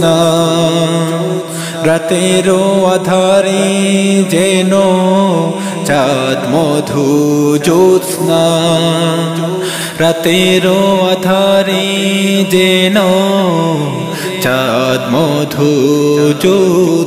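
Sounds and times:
wordless sung vocal melody: 0.0 - 17.0.

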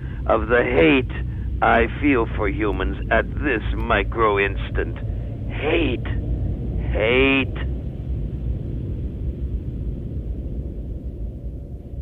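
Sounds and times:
deep rumbling drone: 0.0 - 12.0.

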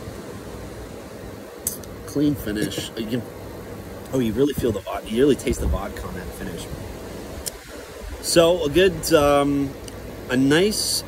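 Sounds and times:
wind rumbling on microphone: 4.2 - 9.8.

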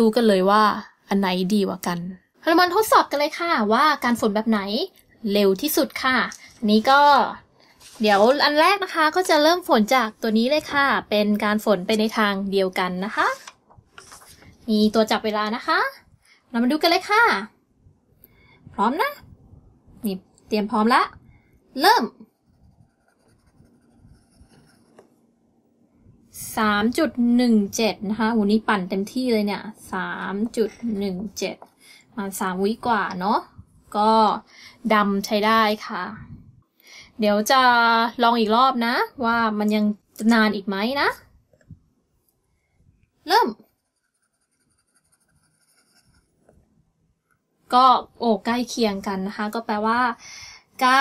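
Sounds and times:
pencil scratching on paper: 22.2 - 25.2, 43.5 - 46.6.

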